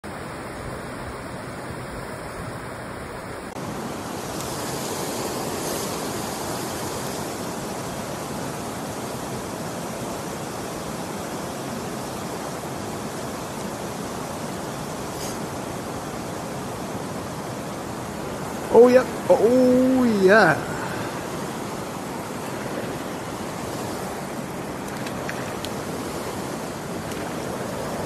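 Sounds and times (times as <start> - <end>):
water rushing over rocks: 3.4 - 28.0.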